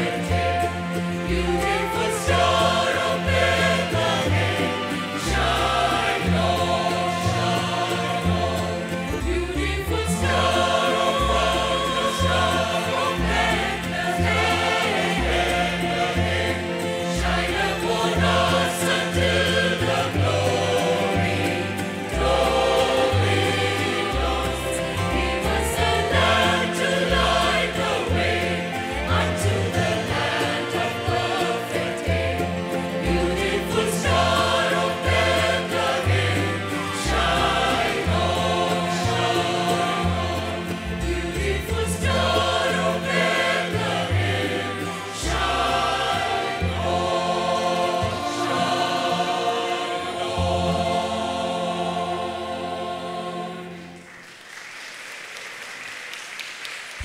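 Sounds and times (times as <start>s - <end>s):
choir singing a carol: 0.0s - 54.2s.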